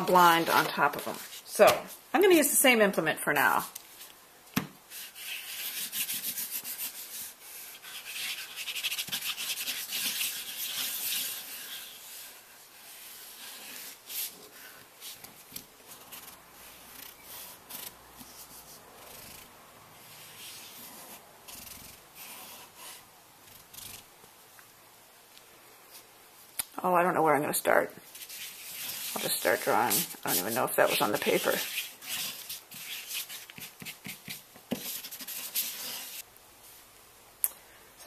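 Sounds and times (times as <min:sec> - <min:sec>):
scratching on drawing paper: 0:00.0 - 0:01.6, 0:04.9 - 0:24.0, 0:28.1 - 0:36.2.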